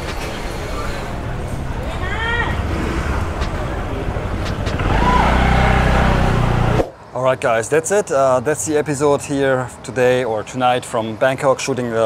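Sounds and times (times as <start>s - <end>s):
traffic: 0.0s - 12.0s
vehicle engine approaching: 0.3s - 6.9s.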